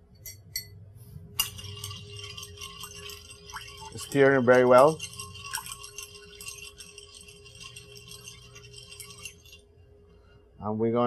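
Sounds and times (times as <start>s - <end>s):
ice cubes clinking in pitcher: 1.4s - 9.6s.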